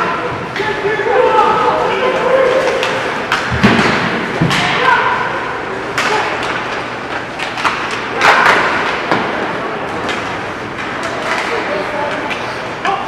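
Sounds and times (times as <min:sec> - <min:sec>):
voices shouting: 0:00.0 - 0:03.3
hockey sticks clacking: 0:00.0 - 0:04.9, 0:05.8 - 0:13.0.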